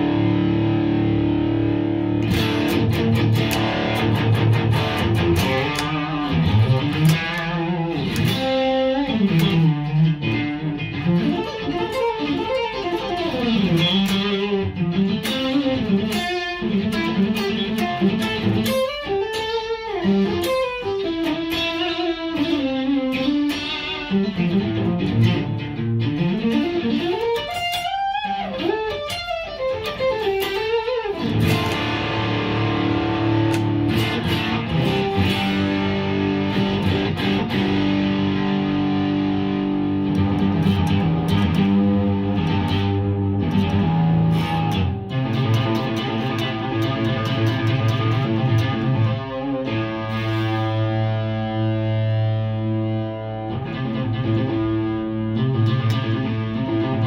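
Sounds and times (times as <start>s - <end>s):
electric guitar playing: 0.0s - 57.0s.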